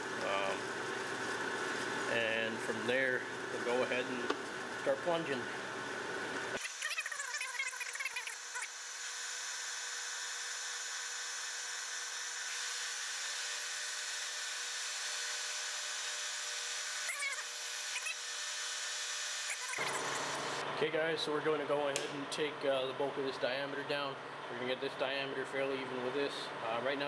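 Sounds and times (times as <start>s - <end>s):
squealing chirps from cut: 17.0s - 18.2s, 19.5s - 20.1s.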